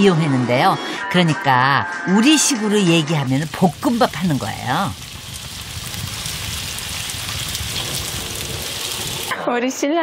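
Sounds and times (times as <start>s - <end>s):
food sizzling in a frying pan: 3.1s - 9.4s.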